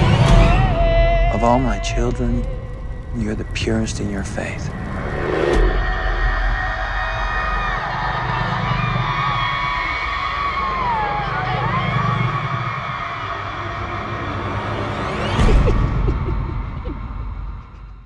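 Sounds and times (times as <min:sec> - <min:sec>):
low droning rumble: 0:00.0 - 0:08.7
women wailing and crying: 0:15.0 - 0:17.3.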